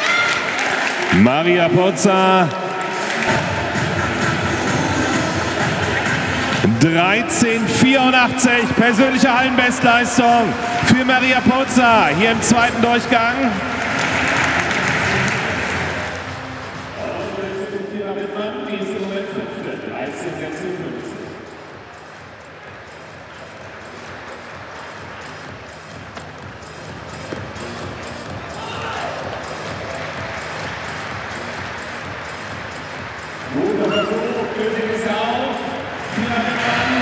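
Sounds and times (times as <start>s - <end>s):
people clapping: 0.0s - 6.7s, 7.6s - 17.4s, 21.4s - 37.0s
crowd noise: 0.0s - 37.0s
music: 0.0s - 37.0s
voice over loudspeakers: 1.0s - 3.6s, 6.5s - 13.7s, 33.5s - 37.0s.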